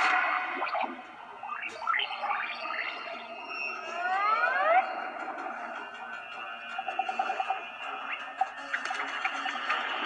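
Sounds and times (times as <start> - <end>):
animated film music and effects: 0.0 - 10.0.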